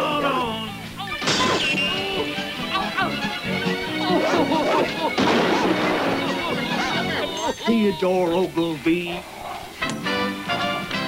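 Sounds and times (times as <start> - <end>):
sharp crack: 1.2 - 2.0, 4.3 - 7.0
man making wordless exclamations: 7.2 - 9.2.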